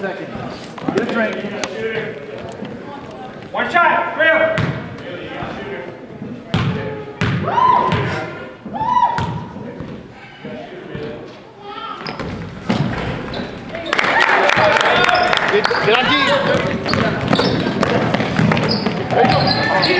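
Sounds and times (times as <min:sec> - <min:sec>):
sneakers squeaking: 0:04.5 - 0:19.9
players scuffling: 0:07.9 - 0:19.9
basketball bouncing on hardwood: 0:16.4 - 0:19.5.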